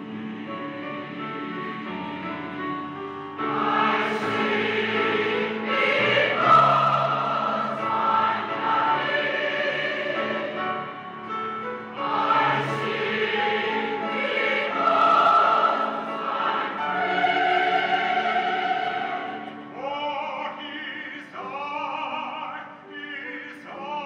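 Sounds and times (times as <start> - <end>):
mixed choir singing: 0.0 - 2.6, 3.4 - 21.5.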